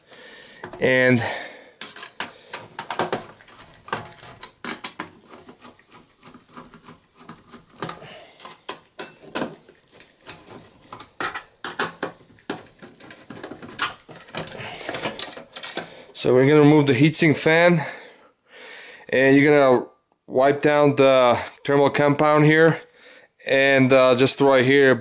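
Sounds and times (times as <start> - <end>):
heatsink knocked and handled: 0.6 - 0.8, 1.8 - 5.7, 6.3 - 16.0.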